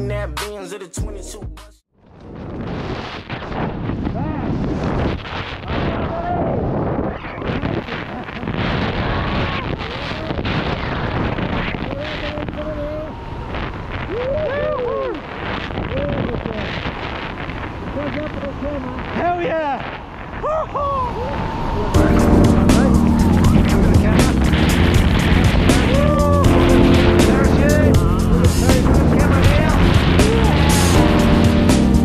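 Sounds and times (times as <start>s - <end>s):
wind rushing over microphone: 2.0s - 32.0s.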